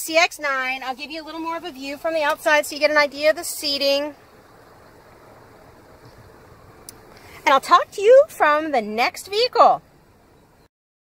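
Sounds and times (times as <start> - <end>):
faint steady background noise: 0.0 - 10.7.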